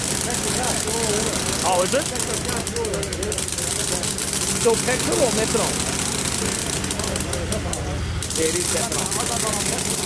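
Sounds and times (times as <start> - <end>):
model radial engine running: 0.0 - 10.0
people's voices: 0.0 - 10.0
rapid fine ticking: 0.0 - 10.0.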